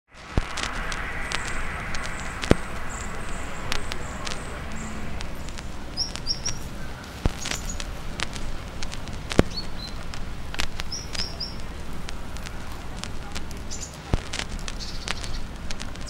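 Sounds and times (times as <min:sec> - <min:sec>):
sharp clicks and pops: 0:00.0 - 0:16.0
steady low background noise: 0:00.1 - 0:16.0
small birds chirping: 0:00.4 - 0:16.0.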